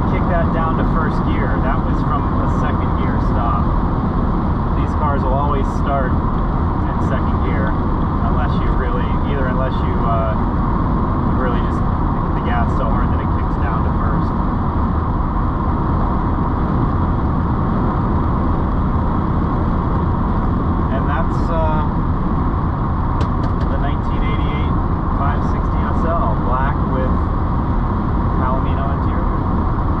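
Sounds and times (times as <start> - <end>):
car interior road noise: 0.0 - 30.0.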